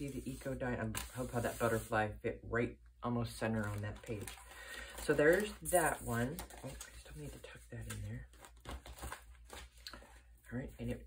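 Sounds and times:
paper rustling and sliding: 0.0s - 2.0s
journal pages and cover closing: 7.8s - 9.8s.

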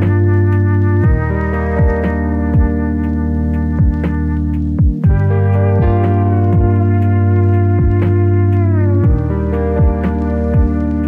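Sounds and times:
deep pitch-dropping beat thumps: 0.0s - 11.0s
held synthesizer chord: 0.0s - 11.0s.

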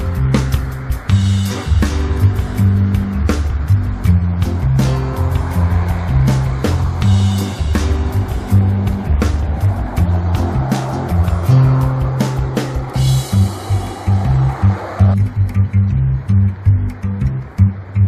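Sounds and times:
drum beat: 0.0s - 15.6s
bass line: 0.0s - 18.0s.

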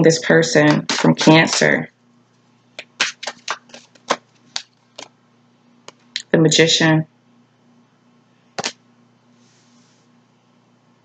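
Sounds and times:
cards being shuffled: 0.7s - 1.8s, 2.8s - 5.1s, 8.6s - 8.8s.

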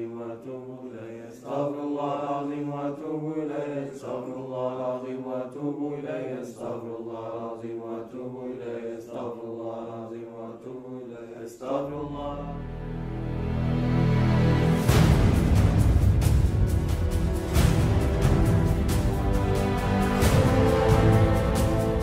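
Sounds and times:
person chanting: 0.0s - 13.1s
low sustained music: 12.2s - 22.0s.

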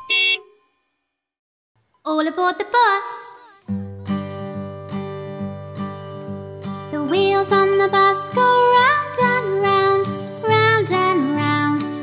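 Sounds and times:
cartoon bus horn beep: 0.0s - 1.0s.

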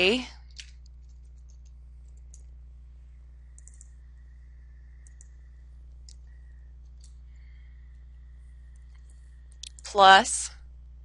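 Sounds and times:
low electrical hum: 0.0s - 11.0s
keyboard and mouse clicks: 0.5s - 2.5s, 3.5s - 4.0s, 5.0s - 5.4s.

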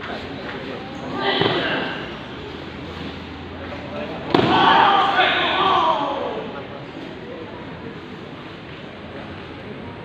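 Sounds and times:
loud shouting: 4.3s - 6.6s.

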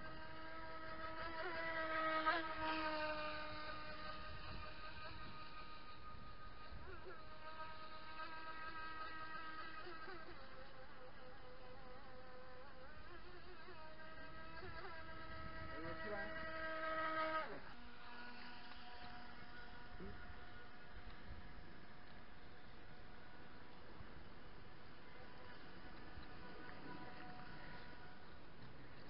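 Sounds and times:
model boat motor whining: 0.0s - 29.0s.

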